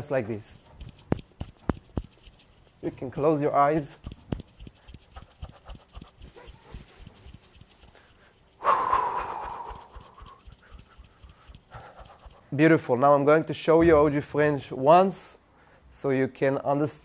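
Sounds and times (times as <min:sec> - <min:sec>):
long loud exhale: 0:08.6 - 0:09.8.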